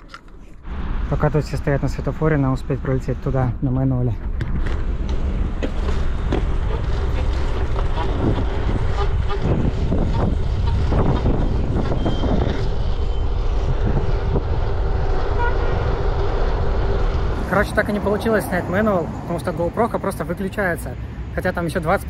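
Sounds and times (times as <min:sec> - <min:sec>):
wind rumble on microphone: 0:00.0 - 0:19.3
road traffic: 0:00.0 - 0:22.0.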